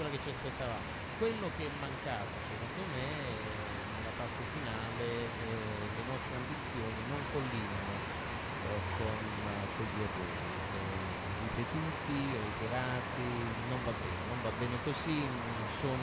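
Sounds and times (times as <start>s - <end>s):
person talking indistinctly: 0.0s - 8.0s, 8.6s - 16.0s
steady line hiss: 0.0s - 16.0s.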